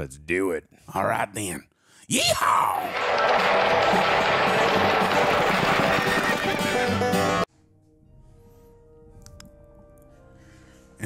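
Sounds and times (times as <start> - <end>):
loud intro music: 2.9 - 7.5
faint sustained music: 7.4 - 11.0.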